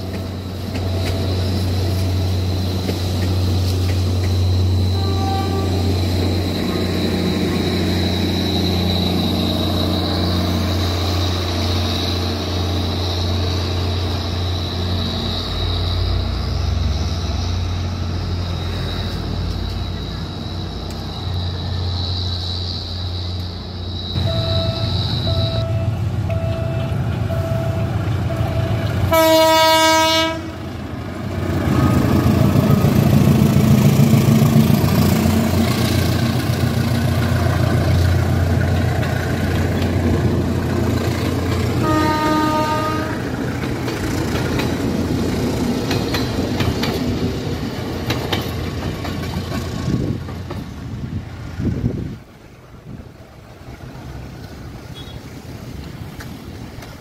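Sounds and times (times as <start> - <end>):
train rumble and wheel clatter: 0.0 - 57.0
train horn blasts: 4.8 - 6.8, 24.2 - 30.6, 41.7 - 43.4.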